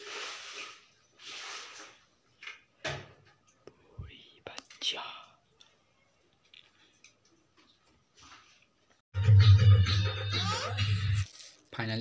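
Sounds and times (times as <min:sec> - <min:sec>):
person whispering: 0:03.8 - 0:05.6.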